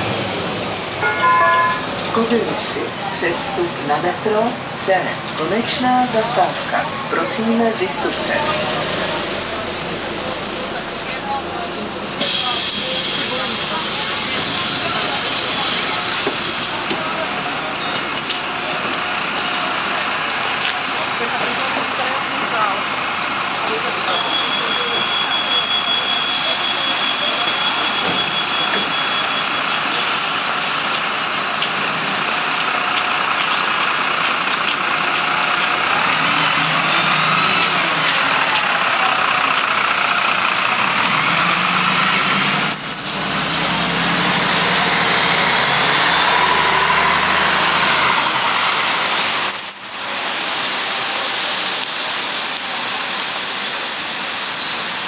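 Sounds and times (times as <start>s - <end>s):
bus diesel engine rumbling: 0.0s - 55.0s
street noise: 0.0s - 55.0s
high-pitched two-note tone: 1.0s - 1.9s
people talking: 1.0s - 42.7s.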